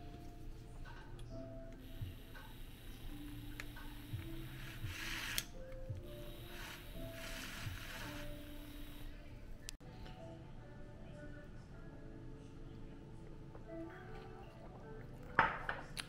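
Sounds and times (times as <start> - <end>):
background music: 0.0 - 16.0
milk frother motor whirring: 1.9 - 9.2.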